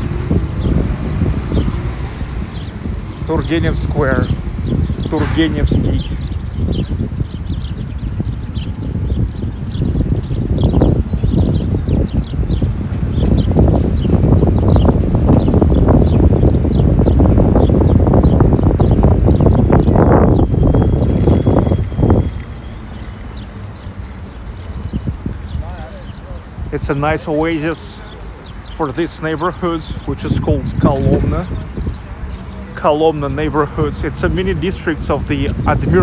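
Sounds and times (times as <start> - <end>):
small birds chirping: 0.0 - 36.0.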